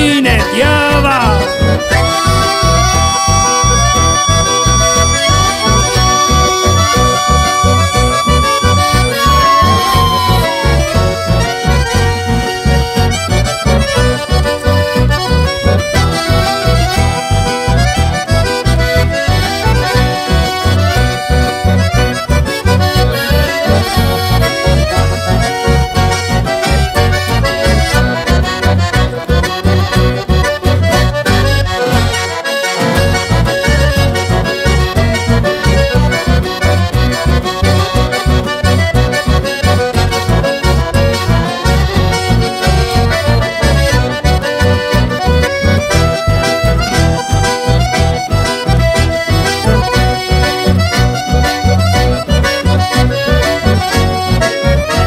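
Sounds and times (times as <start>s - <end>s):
steady bass beat: 0.0s - 32.2s, 32.8s - 55.0s
button accordions: 0.0s - 55.0s
strummed guitars: 0.0s - 55.0s.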